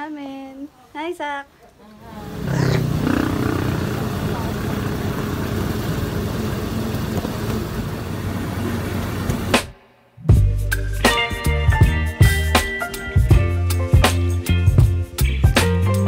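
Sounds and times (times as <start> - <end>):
motorcycle engine and road noise: 2.1 - 9.6.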